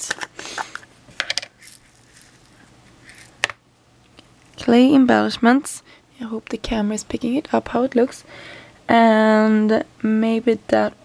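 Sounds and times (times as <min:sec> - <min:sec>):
small plastic pieces rattling: 0:00.0 - 0:03.5.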